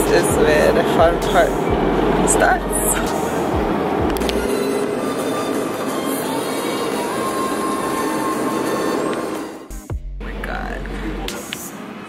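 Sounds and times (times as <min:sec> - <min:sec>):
loud rushing vehicle noise: 0:00.0 - 0:09.7.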